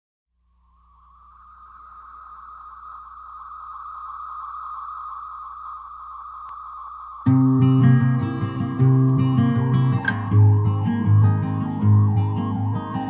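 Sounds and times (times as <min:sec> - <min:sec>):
low hum: 0:00.3 - 0:13.0
high-pitched drone: 0:00.5 - 0:13.0.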